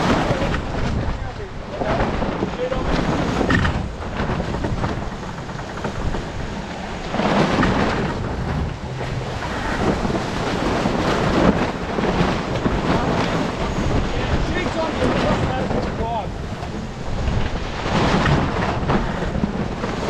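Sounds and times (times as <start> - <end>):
water splashing along hull: 0.0 - 20.0
wind buffeting microphone: 0.0 - 20.0.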